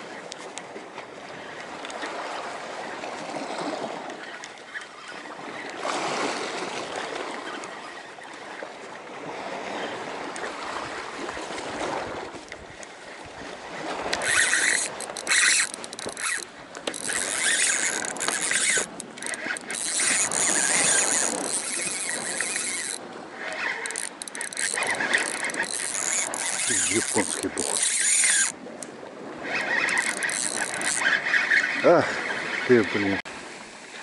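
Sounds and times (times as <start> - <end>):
fishing reel whirring and clicking: 13.7 - 28.6, 29.4 - 32.7.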